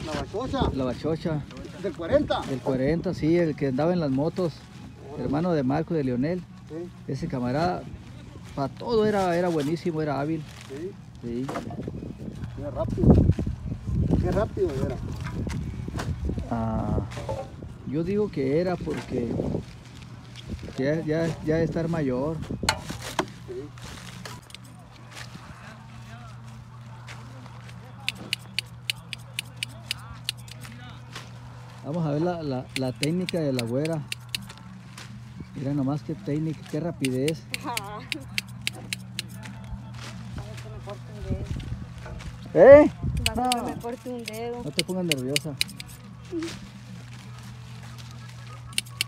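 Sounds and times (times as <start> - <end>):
faint voices: 23.3 - 49.0
hand shears snipping: 24.4 - 24.7, 28.1 - 30.7, 32.7 - 34.6, 37.0 - 39.4, 43.2 - 46.0, 48.7 - 49.0.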